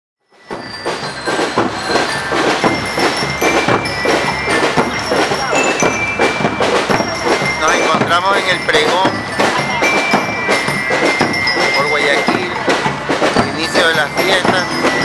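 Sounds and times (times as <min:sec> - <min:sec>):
drum strokes: 0:00.3 - 0:15.0
high ringing notes: 0:00.3 - 0:15.0
marching band playing: 0:00.3 - 0:15.0.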